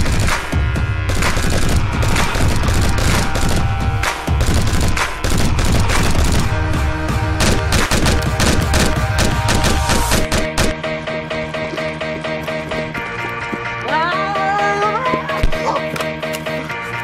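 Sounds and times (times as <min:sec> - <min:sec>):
gunfire sound effects: 0:00.0 - 0:06.7, 0:07.3 - 0:10.8
music with heavy bass beat: 0:00.0 - 0:13.7.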